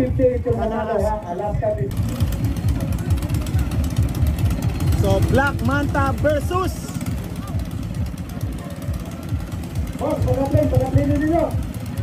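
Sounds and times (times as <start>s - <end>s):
boat engines rumbling: 0.0s - 12.0s.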